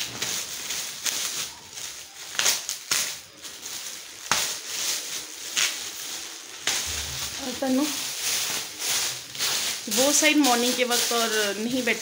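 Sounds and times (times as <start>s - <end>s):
gift wrap crinkling: 0.0s - 12.0s.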